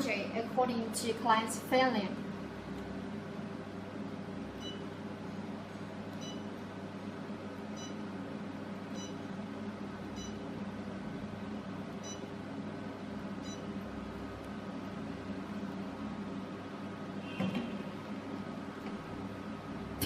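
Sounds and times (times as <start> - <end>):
machine cooling hum: 0.0 - 20.0
short electronic beeps: 4.6 - 4.8, 6.2 - 6.5, 7.8 - 8.0, 10.2 - 10.4, 12.0 - 12.3, 13.4 - 13.7.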